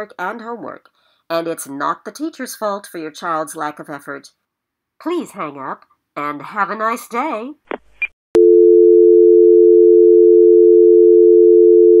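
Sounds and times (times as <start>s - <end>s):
two-note dial tone hum: 8.4s - 12.0s.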